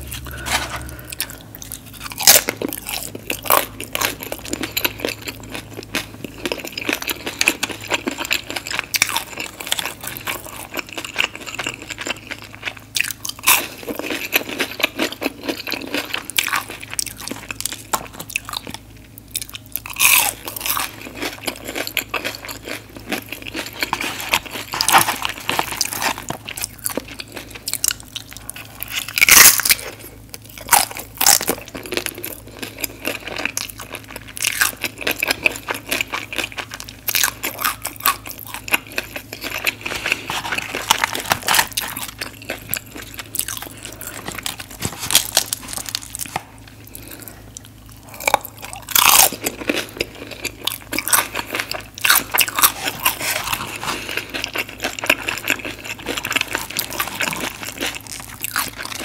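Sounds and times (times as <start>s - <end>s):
chewing crunchy fried food: 0.0s - 59.0s.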